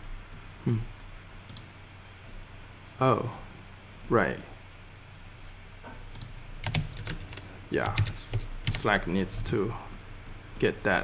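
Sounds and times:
computer keyboard typing: 0:06.2 - 0:09.0.

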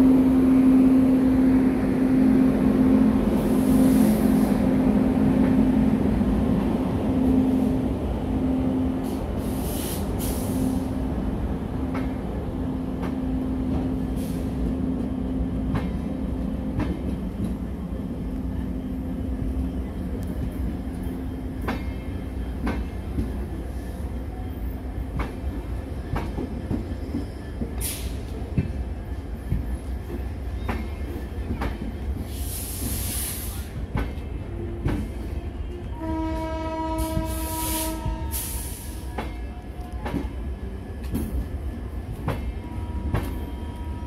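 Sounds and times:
train coaches rumbling past: 0:00.0 - 0:44.0.

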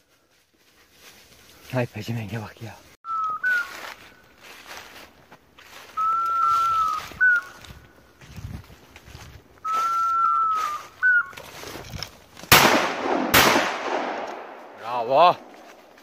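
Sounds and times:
high whistle-like tone: 0:03.1 - 0:04.0, 0:05.9 - 0:07.7, 0:09.6 - 0:11.4
shotgun shots: 0:12.5 - 0:15.7.

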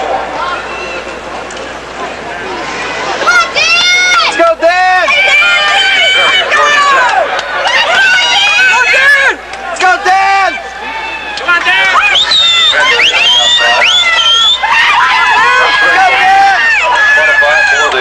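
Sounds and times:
stadium background noise: 0:00.0 - 0:18.0
spectator yelling and cheering: 0:02.9 - 0:18.0.

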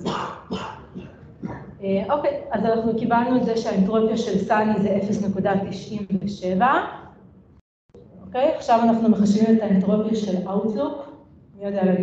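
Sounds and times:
faint murmurs: 0:00.0 - 0:01.8
noisy vocal burst: 0:00.0 - 0:01.8.

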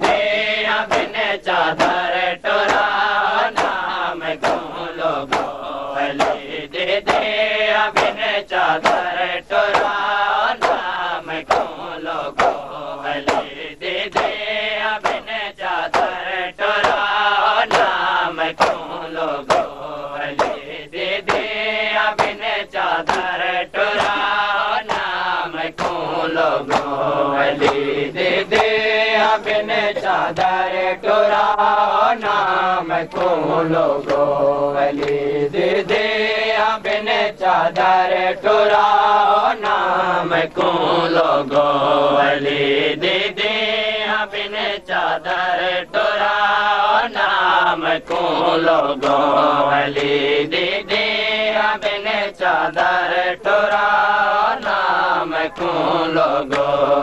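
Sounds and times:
men chanting in unison: 0:00.0 - 0:57.0
hands striking chests: 0:19.5 - 0:20.6.

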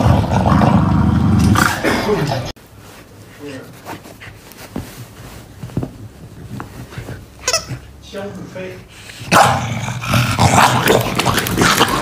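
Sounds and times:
soft rustling: 0:02.6 - 0:08.8
squeaky toy squawk: 0:07.4 - 0:07.8.

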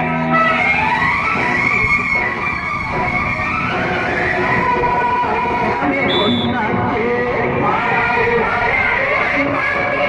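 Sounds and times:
large outdoor crowd din: 0:00.0 - 0:10.0.

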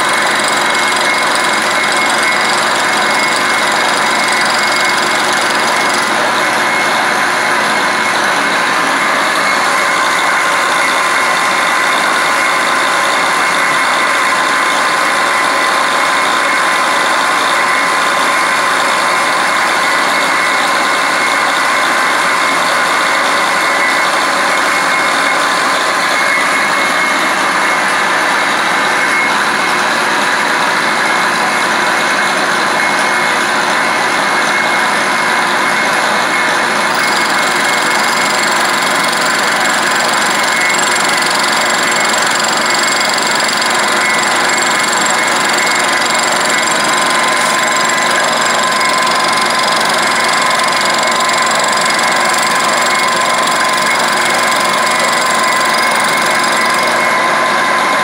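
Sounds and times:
milling machine whining: 0:00.0 - 0:58.0.

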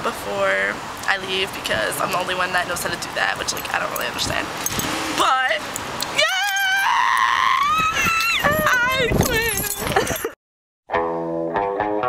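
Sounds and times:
high-pitched voice singing: 0:08.4 - 0:09.9.

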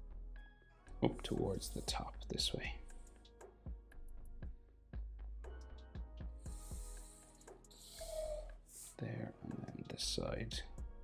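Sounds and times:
quiet background music: 0:00.0 - 0:11.0
marker pen scratching on paper: 0:06.5 - 0:07.2
marker squeak: 0:07.7 - 0:09.0.

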